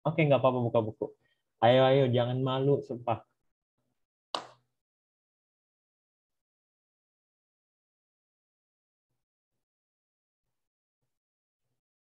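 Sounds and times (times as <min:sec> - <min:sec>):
short pop: 0:04.4 - 0:04.6.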